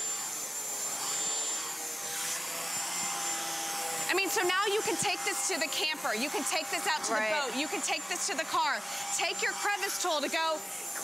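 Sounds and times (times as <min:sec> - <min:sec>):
vacuum cleaner running over carpet: 0:00.0 - 0:11.0.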